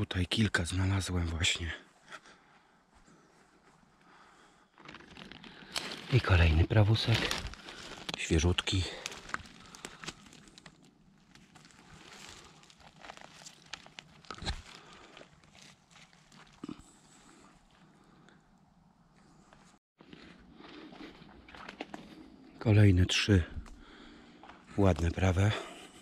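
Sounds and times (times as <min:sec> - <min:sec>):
small cracks: 0:04.7 - 0:06.3, 0:07.0 - 0:16.9
rustling of pine-needle litter: 0:04.8 - 0:16.6
footsteps on forest floor: 0:04.8 - 0:16.8, 0:20.0 - 0:22.3.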